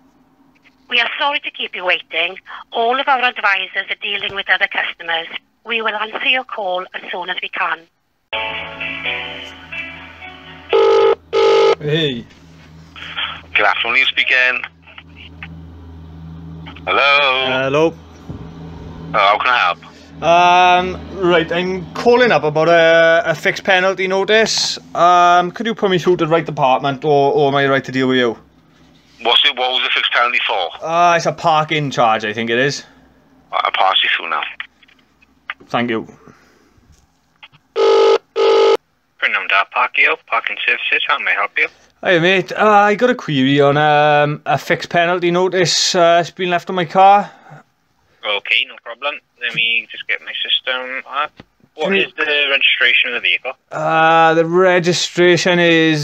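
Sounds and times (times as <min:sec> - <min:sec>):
telephone hold music: 0:08.4 - 0:11.7
telephone ringing tone: 0:10.0 - 0:11.8, 0:37.8 - 0:38.8.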